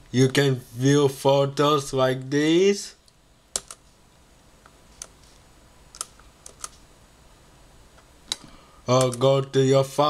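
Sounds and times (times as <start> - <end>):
laptop clicks: 3.5 - 3.8, 5.9 - 6.8, 8.3 - 9.3.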